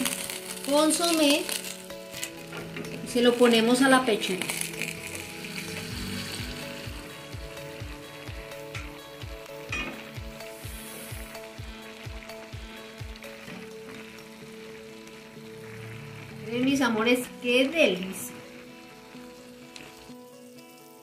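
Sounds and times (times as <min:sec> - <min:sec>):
broth sizzling in a frying pan: 0:00.0 - 0:21.0
soft background music: 0:00.0 - 0:21.0.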